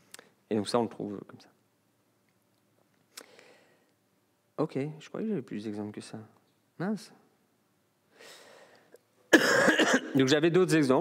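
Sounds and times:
man coughing: 9.3 - 10.2.

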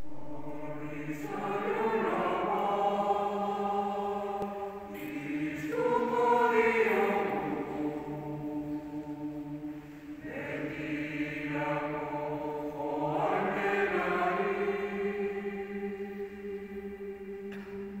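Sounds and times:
mixed choir singing unaccompanied: 0.0 - 18.0.

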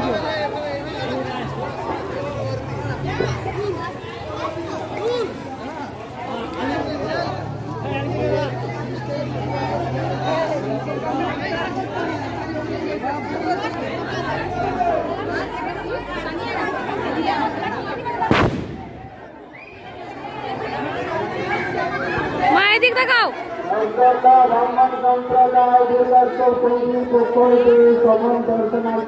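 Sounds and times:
women chattering: 0.0 - 23.8
sharp bang: 18.3 - 19.3.

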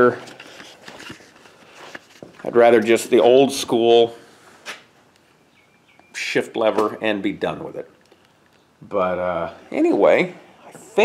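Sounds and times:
man speaking: 2.4 - 4.2, 6.2 - 8.0, 8.8 - 11.0.

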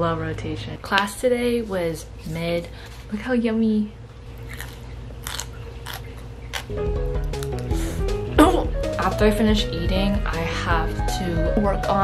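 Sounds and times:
person chewing crunchy food: 4.3 - 8.0.

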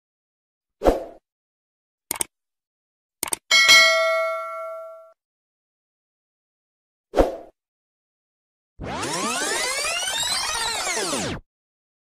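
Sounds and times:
bright bell ding: 3.5 - 5.1.

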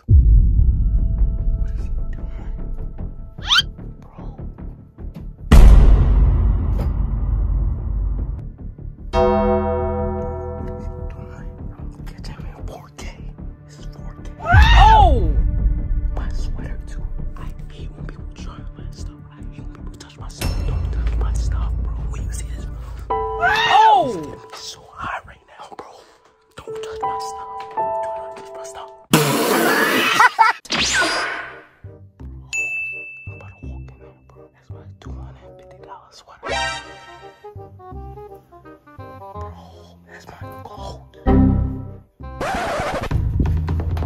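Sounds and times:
background music with low beat: 0.0 - 25.9, 41.3 - 42.4, 43.0 - 44.0
noisy crash: 5.5 - 8.4
bell-like ding: 9.2 - 11.6, 20.4 - 21.2, 32.6 - 33.6
piano-like keyboard chord ringing: 9.2 - 12.0, 23.1 - 24.8.

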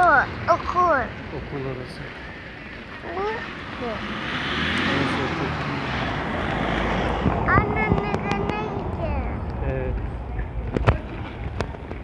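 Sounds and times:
wind rushing across microphone: 3.5 - 12.0
low rumble: 5.0 - 12.0.

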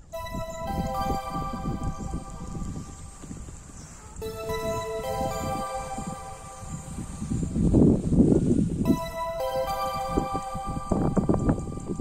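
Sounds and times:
background music: 0.0 - 3.4, 4.2 - 7.7, 8.8 - 12.0.

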